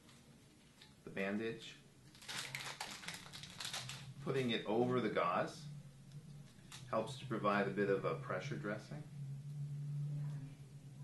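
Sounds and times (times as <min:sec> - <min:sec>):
wrapper crinkling and rustling: 0:02.1 - 0:04.6.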